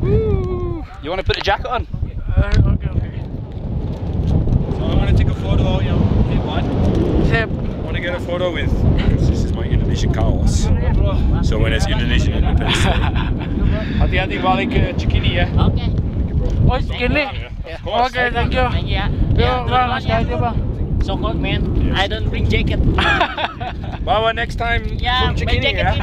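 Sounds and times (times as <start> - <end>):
wind buffeting microphone: 0.0 - 26.0
voices talking: 7.2 - 23.4, 24.8 - 26.0.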